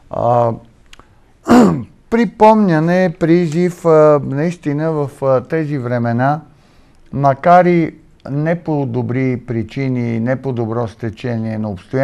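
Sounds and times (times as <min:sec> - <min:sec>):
man clearing throat: 0:01.5 - 0:01.9
man's vocal hesitation: 0:01.5 - 0:01.9.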